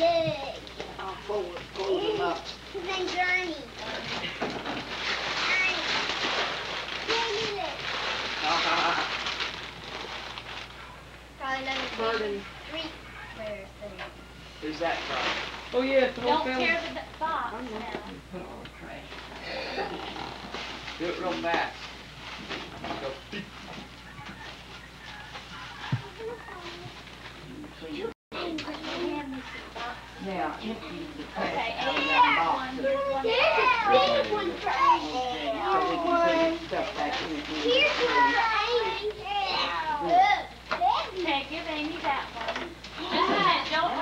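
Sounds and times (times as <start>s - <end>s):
family chatter: 0.0s - 44.0s
paper rustling and tearing: 4.2s - 10.8s, 36.1s - 39.1s.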